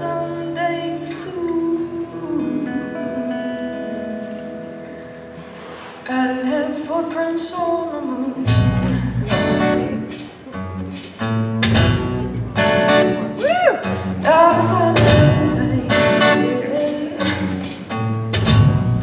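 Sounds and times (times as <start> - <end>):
woman singing: 0.0 - 4.6, 6.1 - 9.9, 13.4 - 17.8
strummed acoustic guitar: 0.0 - 6.9, 8.4 - 19.0
electric bass: 8.5 - 10.1, 10.7 - 19.0.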